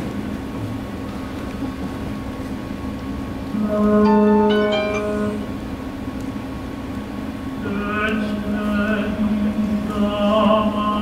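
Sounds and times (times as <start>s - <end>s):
faint steady whine: 0.0s - 11.0s
low room hum and rumble: 0.0s - 11.0s.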